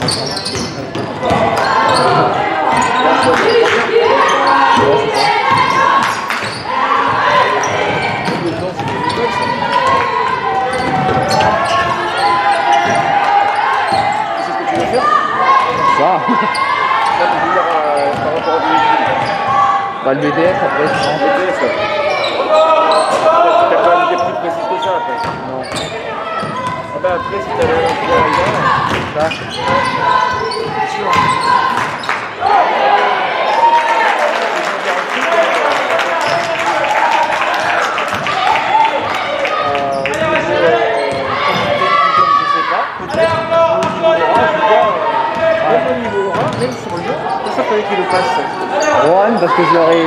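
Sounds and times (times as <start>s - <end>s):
shouts and chatter: 0.0s - 50.0s.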